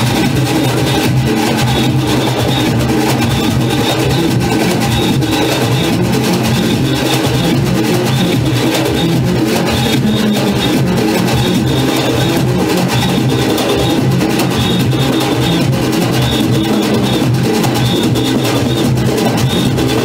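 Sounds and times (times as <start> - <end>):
cowbells: 0.0 - 20.0
drums: 0.0 - 20.0
horns playing rhythmic tune: 0.0 - 20.0.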